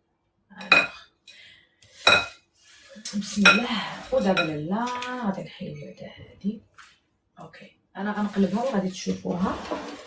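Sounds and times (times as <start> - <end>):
ladle scraping bowl: 8.1 - 10.0.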